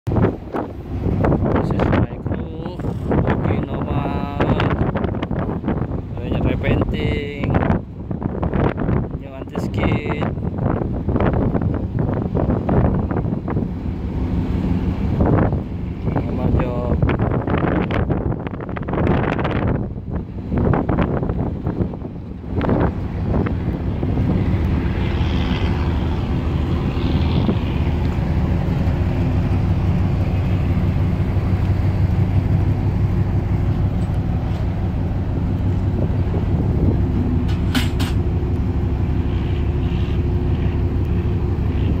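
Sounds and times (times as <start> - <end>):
engine humming steadily: 0.1 - 42.0.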